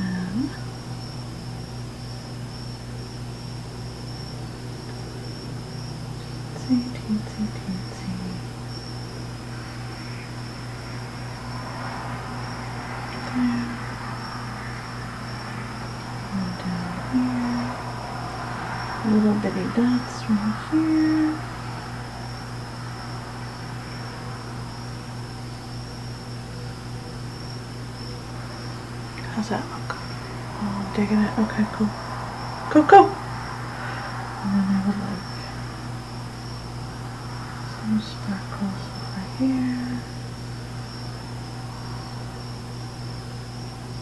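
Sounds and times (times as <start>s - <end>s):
woman humming low notes: 0.0s - 0.7s, 6.2s - 8.6s, 13.1s - 14.0s, 16.0s - 17.9s, 19.0s - 21.6s, 34.4s - 35.6s
high-pitched whine: 0.0s - 44.0s
steady low hum: 0.0s - 44.0s.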